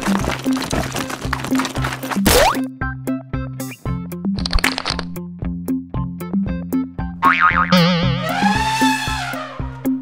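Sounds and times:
cartoon boing effect: 0:07.2 - 0:08.4.

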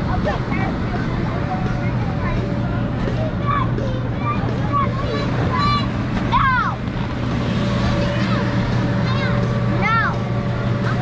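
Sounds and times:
children's voices: 0:00.0 - 0:07.0, 0:07.8 - 0:11.0
electric air blower drone: 0:00.0 - 0:11.0.

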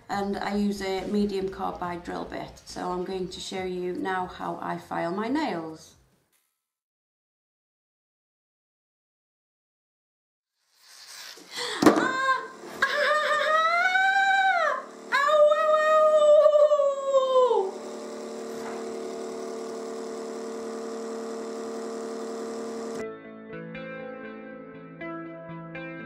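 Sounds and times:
steady hum: 0:11.4 - 0:23.0
woman wailing: 0:11.6 - 0:17.8
guitar music: 0:23.0 - 0:26.0.

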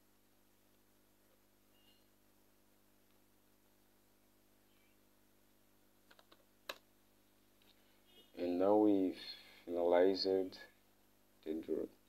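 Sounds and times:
keyboard keystrokes: 0:06.1 - 0:06.8.

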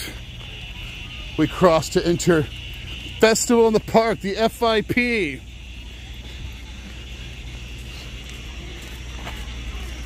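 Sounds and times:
low outdoor rumble: 0:00.0 - 0:10.0
footsteps on footbridge: 0:06.1 - 0:10.0.

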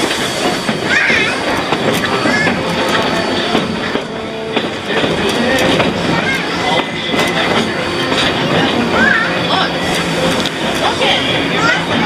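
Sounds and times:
passengers chattering: 0:00.0 - 0:12.0
train wheels clattering on rails: 0:00.0 - 0:12.0.

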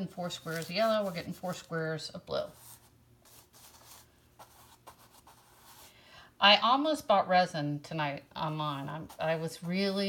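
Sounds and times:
paintbrush strokes on canvas: 0:00.0 - 0:05.9, 0:08.5 - 0:10.0
low room hum: 0:00.0 - 0:10.0.

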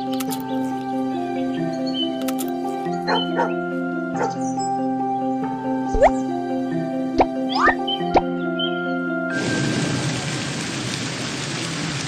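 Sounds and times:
light background music: 0:00.0 - 0:09.6
cartoon rising slide: 0:05.9 - 0:06.2.

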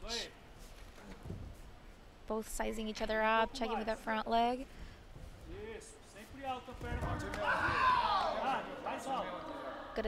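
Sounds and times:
long shout: 0:07.4 - 0:08.6.

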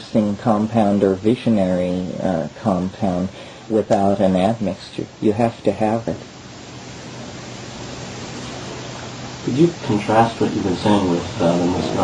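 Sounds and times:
low steady hum: 0:00.0 - 0:12.0
steady hiss: 0:00.0 - 0:12.0.

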